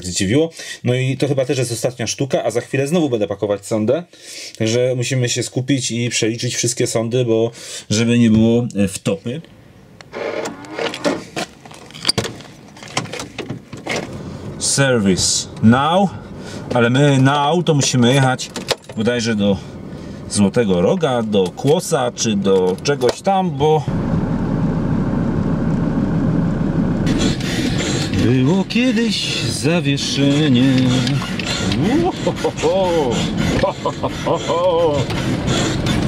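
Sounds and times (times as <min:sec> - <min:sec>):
car engine idling: 0:14.1 - 0:36.0
high-pitched engine whine: 0:23.8 - 0:36.0.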